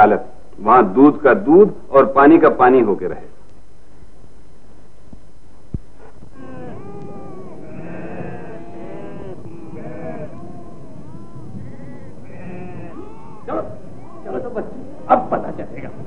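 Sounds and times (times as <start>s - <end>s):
livestock bleating: 6.4s - 15.1s.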